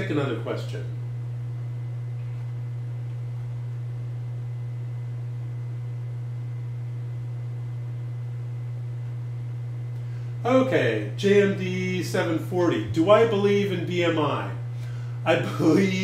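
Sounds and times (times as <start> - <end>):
steady low-pitched hum: 0.0 - 16.0.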